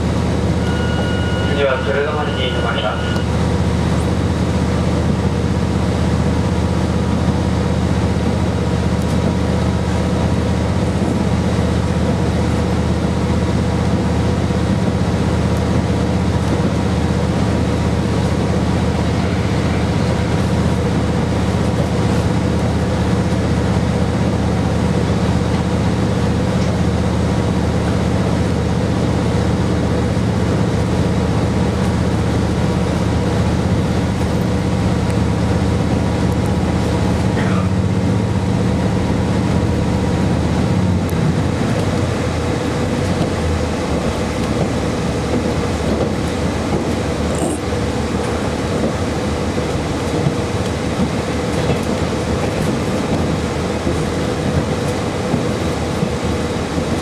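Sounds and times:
diesel engine drone: 0.0 - 57.0
wheel and rail running noise: 0.0 - 57.0.

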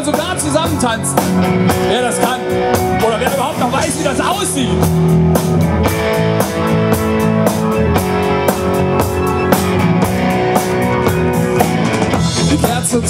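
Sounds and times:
drum kit beat: 0.0 - 13.0
electric guitar chords: 0.0 - 13.0.

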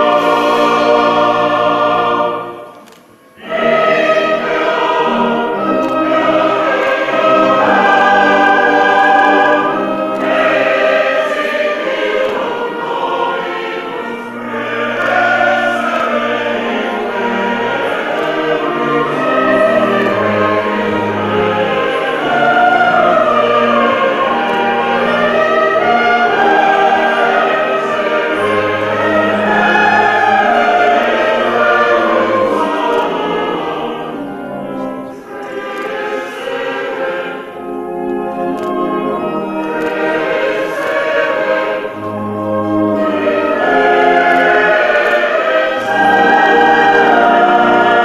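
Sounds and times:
choir singing a chant: 0.0 - 48.0.

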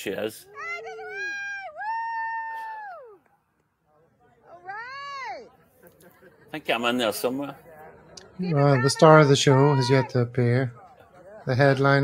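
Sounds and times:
person whooping: 1.8 - 3.2.

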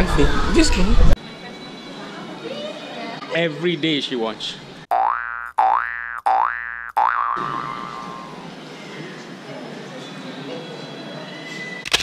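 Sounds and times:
low background hubbub: 0.0 - 4.9, 7.4 - 11.8
cartoon boing sound effect: 4.9 - 8.4.

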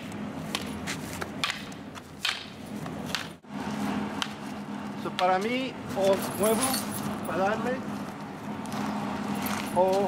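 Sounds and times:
sticks knocking and scuffing: 0.0 - 3.4, 4.1 - 6.2
steady low hum: 0.0 - 10.0.

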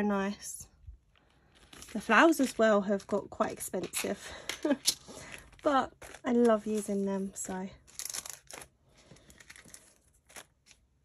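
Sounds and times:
plastic packets crinkling: 1.3 - 11.0.

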